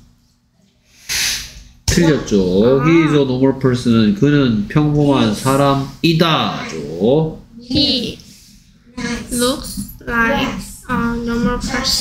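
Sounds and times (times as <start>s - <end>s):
faint steady hum: 0.0s - 12.0s
breathy hiss into microphone: 0.8s - 1.7s.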